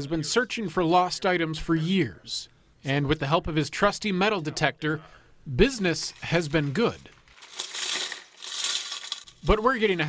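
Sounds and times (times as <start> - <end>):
metal rattling in plastic jar: 6.8 - 9.6.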